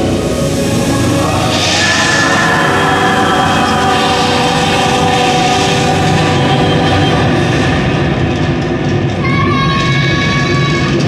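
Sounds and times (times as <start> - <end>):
smoke effect rumble and hiss: 0.0 - 9.2
sustained held tones: 0.0 - 9.2.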